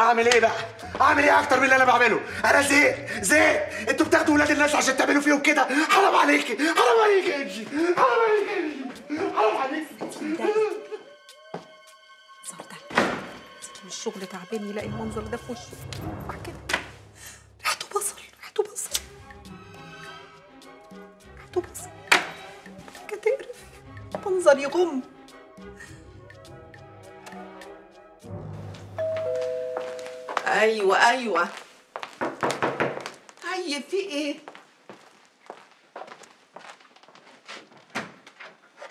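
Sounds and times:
background music with held notes: 0.0 - 17.6, 18.9 - 31.0
two-tone doorbell chime: 29.0 - 30.8.

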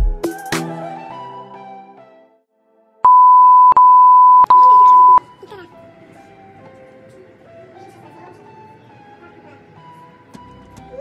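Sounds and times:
continuous high electronic beep: 3.1 - 5.2.

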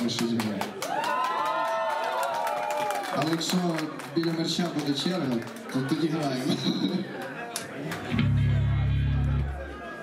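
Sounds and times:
electric bass guitar note: 8.1 - 9.7.

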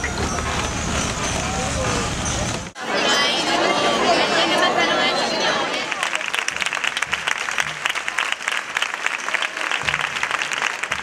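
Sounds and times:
vehicle noise: 0.0 - 2.8
people talking: 0.0 - 11.0.

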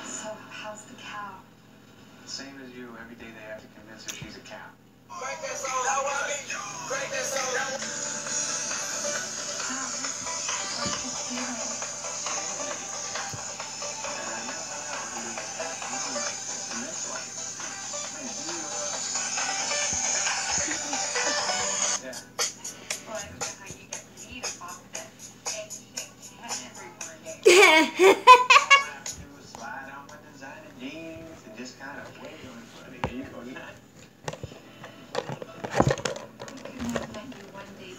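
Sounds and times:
music with voices from tablet speaker: 5.1 - 27.5, 28.6 - 33.7.

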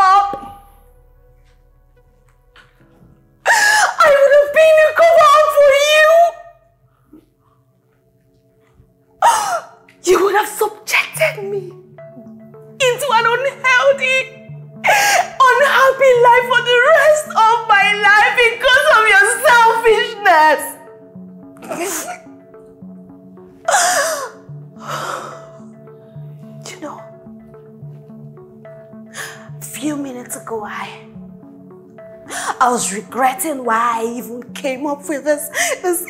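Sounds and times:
soft film score: 0.0 - 36.0
woman sobbing gasp: 3.4 - 4.0, 9.2 - 9.8, 14.8 - 15.4, 21.6 - 22.3, 23.6 - 25.6
sob-like breath: 23.6 - 25.8, 29.1 - 29.5, 32.2 - 32.6.

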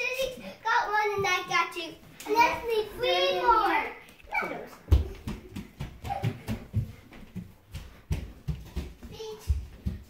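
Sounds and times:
footsteps on hardwood floor: 1.0 - 10.0.

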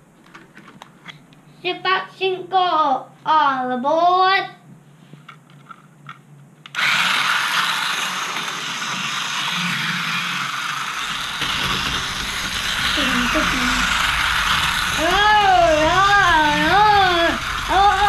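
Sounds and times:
toy train motor whirring: 6.7 - 18.0
deeper rumble: 11.1 - 18.0.

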